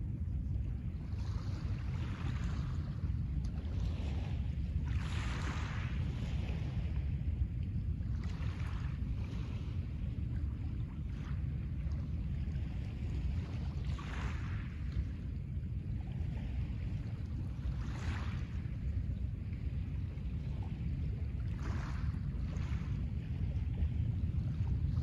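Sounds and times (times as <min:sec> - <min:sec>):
steady low rumble: 0:00.0 - 0:25.0
waves lapping on pebbles: 0:01.4 - 0:07.0, 0:21.6 - 0:23.0.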